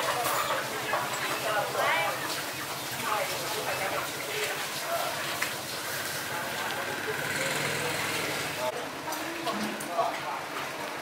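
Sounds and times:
indistinct voices talking: 0:00.0 - 0:09.8.

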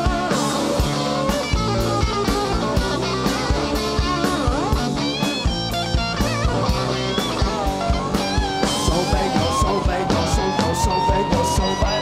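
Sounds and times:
bass guitar: 0:00.0 - 0:12.0
drum kit: 0:00.0 - 0:12.0
lead electric guitar bending notes: 0:00.0 - 0:12.0.

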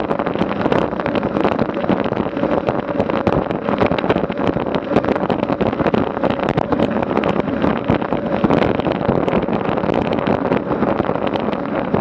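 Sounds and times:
bike tyres on asphalt: 0:00.0 - 0:12.0
wind buffeting microphone: 0:00.0 - 0:12.0.

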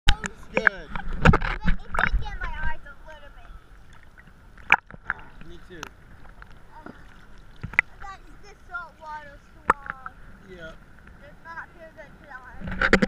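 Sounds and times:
surf splashing: 0:00.1 - 0:13.0.

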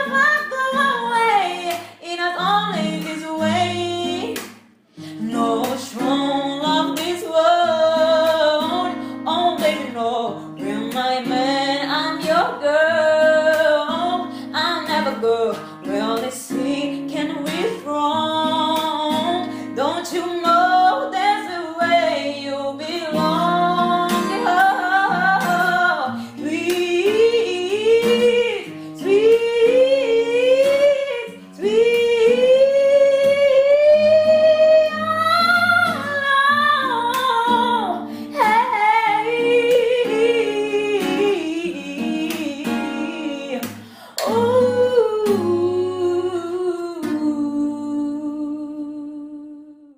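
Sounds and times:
acoustic guitar strummed: 0:00.0 - 0:46.0
woman singing a slow love song: 0:00.0 - 0:49.9.

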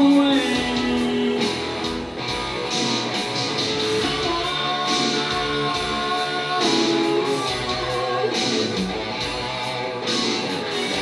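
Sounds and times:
man singing: 0:00.0 - 0:02.0, 0:04.0 - 0:08.8
electric guitar: 0:00.0 - 0:11.0
steady drum beat: 0:00.0 - 0:11.0.

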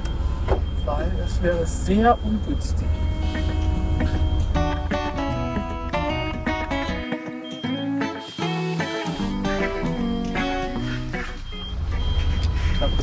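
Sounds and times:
plucked guitar melody: 0:02.7 - 0:12.0.

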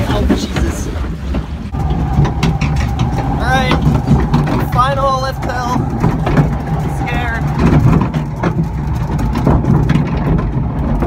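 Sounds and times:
water running: 0:00.0 - 0:09.1
loud noisy rumble: 0:00.0 - 0:11.0.

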